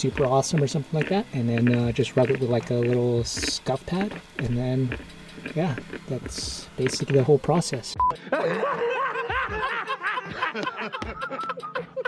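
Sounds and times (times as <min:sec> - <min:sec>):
man laughing hard: 0:08.1 - 0:12.0.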